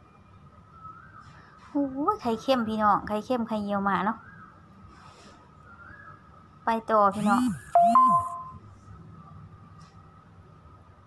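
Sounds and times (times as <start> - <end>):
woman speaking: 1.8 - 4.2, 6.7 - 8.4
two-note electronic chime: 7.8 - 8.6.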